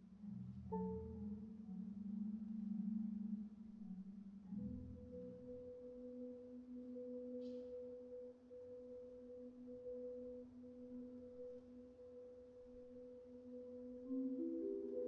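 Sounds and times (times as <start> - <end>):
marimba sustained notes: 14.1 - 15.0.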